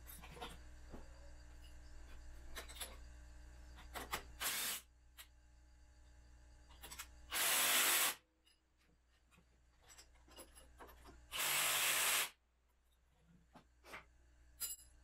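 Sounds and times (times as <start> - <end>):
tools and metal clicking: 2.5 - 3.0, 6.7 - 7.2, 9.3 - 11.2, 14.6 - 15.0
cordless power driver bursts: 4.4 - 4.8, 7.3 - 8.2, 11.3 - 12.3.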